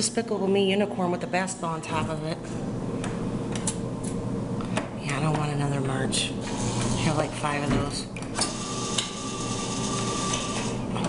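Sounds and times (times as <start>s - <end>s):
claw mechanism whine: 6.4s - 7.5s, 8.2s - 11.0s.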